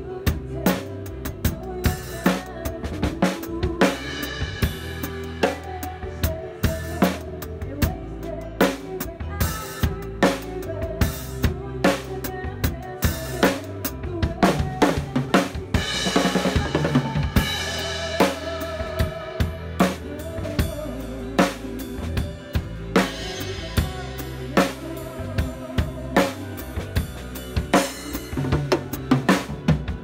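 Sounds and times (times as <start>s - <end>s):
band playing: 8.7s - 30.0s
fast drum fill: 9.8s - 30.0s.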